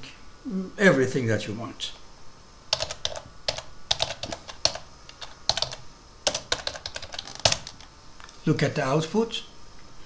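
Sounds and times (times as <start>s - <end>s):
computer keyboard typing: 2.7s - 7.9s.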